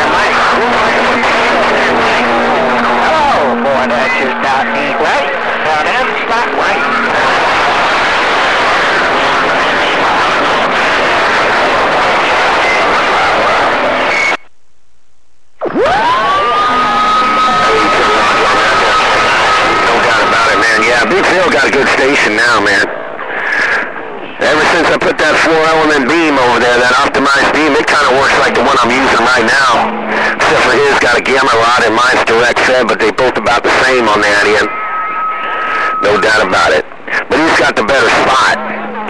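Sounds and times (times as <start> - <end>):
garbled radio voices: 0.0 - 14.4, 15.6 - 39.0
radio static hiss: 0.0 - 39.0
gliding radio whistle: 15.6 - 20.9, 34.6 - 36.4.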